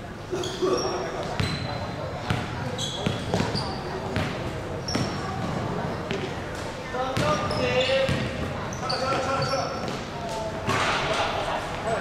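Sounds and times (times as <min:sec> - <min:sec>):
sneaker squeaks: 0:00.3 - 0:11.0
basketball bouncing on wooden floor: 0:04.2 - 0:06.3, 0:08.0 - 0:08.4.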